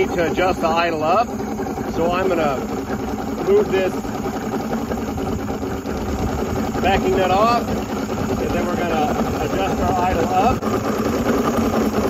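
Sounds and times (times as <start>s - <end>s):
outboard motor idling: 0.0s - 12.0s.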